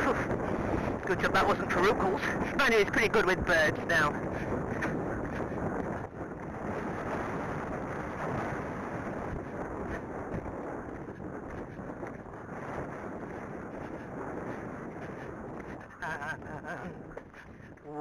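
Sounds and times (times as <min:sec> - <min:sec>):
horse moving: 0:00.0 - 0:18.0
wind buffeting microphone: 0:00.0 - 0:18.0.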